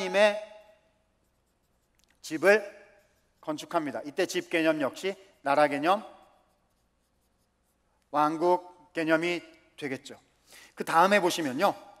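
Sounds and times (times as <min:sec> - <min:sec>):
marker pen squeaking on whiteboard: 0:00.1 - 0:04.4, 0:05.8 - 0:08.1.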